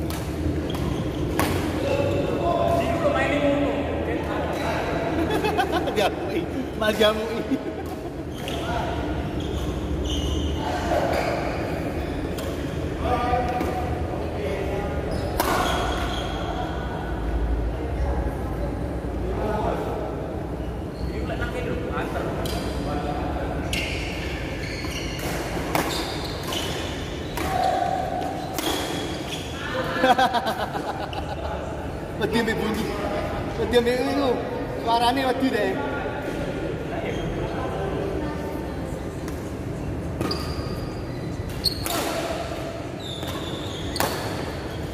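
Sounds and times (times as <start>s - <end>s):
racket hitting shuttlecock: 0.0s - 1.8s, 24.9s - 29.1s, 44.0s - 44.5s.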